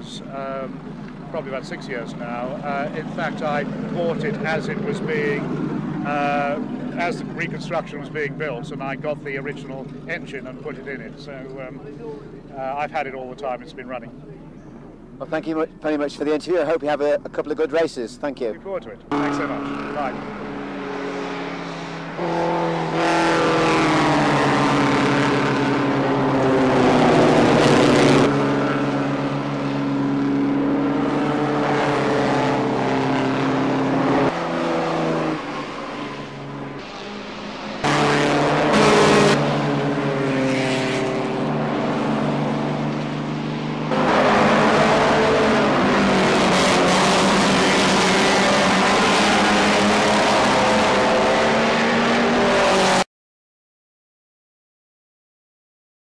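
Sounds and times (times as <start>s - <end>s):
racing car engines revving past: 0.0s - 14.0s, 19.1s - 53.0s.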